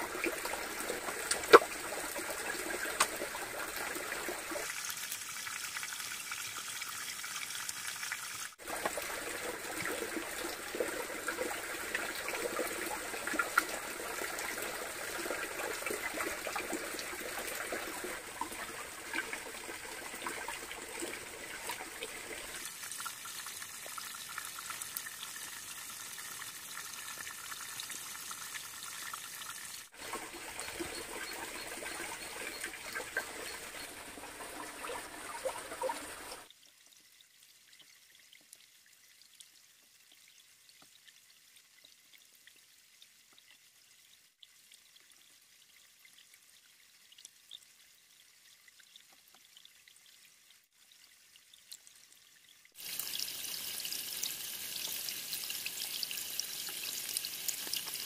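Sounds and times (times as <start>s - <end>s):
running water rushing: 0.0s - 36.5s.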